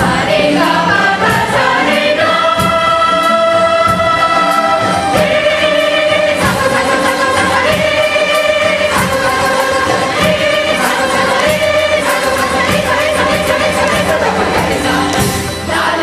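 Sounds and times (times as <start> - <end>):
group of voices singing held notes: 0.0 - 16.0.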